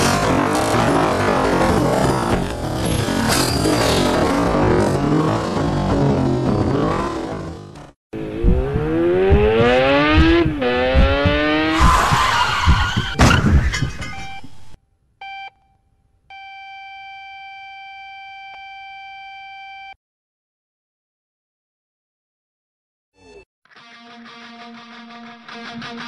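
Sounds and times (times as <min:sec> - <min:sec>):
motorcycle engine revving: 0:00.0 - 0:13.2.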